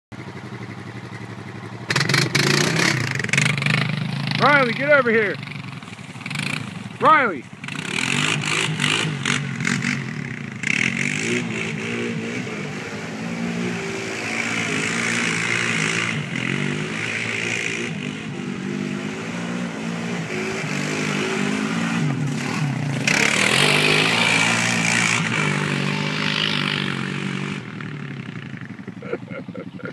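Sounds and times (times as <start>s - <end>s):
atv engine revving: 0.2s - 29.9s.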